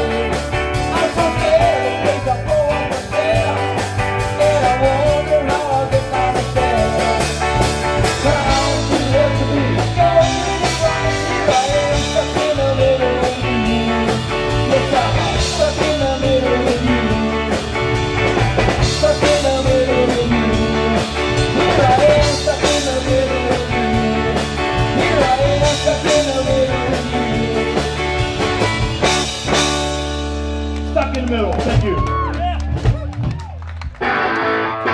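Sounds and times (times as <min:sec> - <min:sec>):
live rock band playing: 0:00.0 - 0:34.9.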